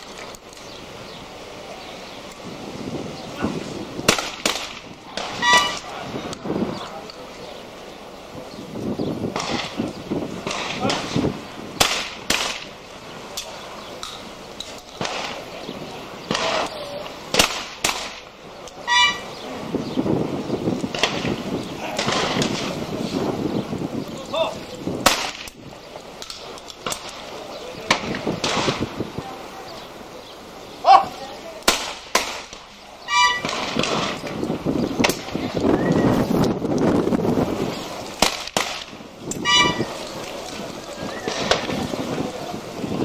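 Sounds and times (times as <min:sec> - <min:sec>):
voices murmuring: 0:00.0 - 0:43.0
shotgun shots: 0:04.1 - 0:05.9, 0:09.4 - 0:09.8, 0:10.4 - 0:11.2, 0:11.8 - 0:12.7, 0:16.3 - 0:18.2, 0:21.9 - 0:22.7, 0:25.0 - 0:25.5, 0:27.9 - 0:28.9, 0:31.7 - 0:32.7, 0:33.3 - 0:34.3, 0:38.2 - 0:39.0.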